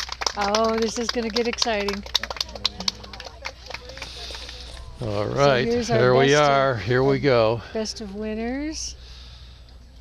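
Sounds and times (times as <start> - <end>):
faint voices: 2.2 - 9.0.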